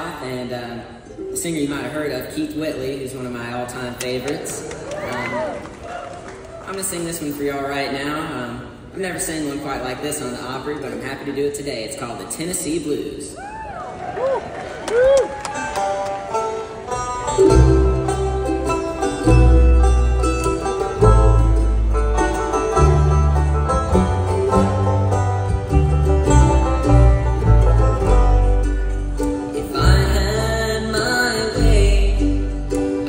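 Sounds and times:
bluegrass band playing: 0:15.4 - 0:33.0
upright bass: 0:16.9 - 0:33.0.

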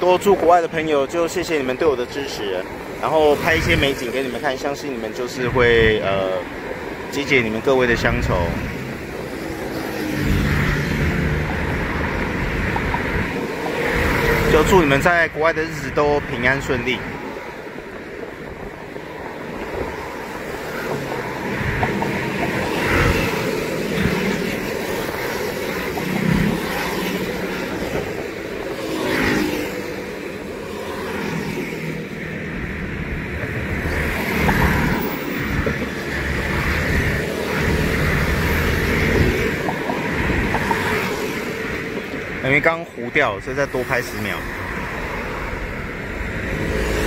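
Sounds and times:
cars driving past: 0:00.0 - 0:47.0.

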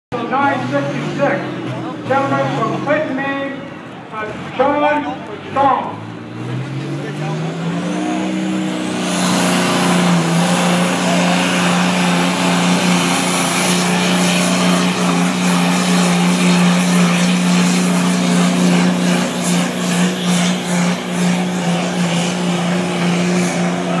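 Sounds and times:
tractor engine at full throttle: 0:00.1 - 0:24.0.

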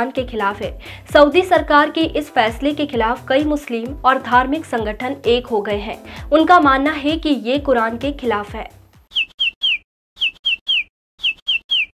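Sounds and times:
bird tweet sound effect: 0:09.1 - 0:12.0.

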